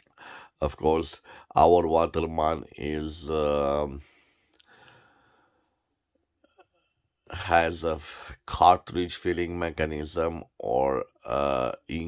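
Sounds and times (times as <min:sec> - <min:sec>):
faint breath: 0:00.1 - 0:00.6, 0:01.2 - 0:01.5, 0:04.0 - 0:05.8.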